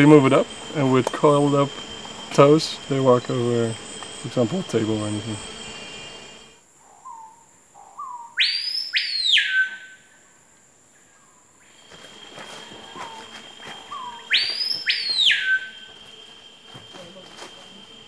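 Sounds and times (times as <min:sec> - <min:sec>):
steady high tone: 0:00.0 - 0:06.6
bird whistling: 0:08.0 - 0:10.1, 0:12.6 - 0:16.1.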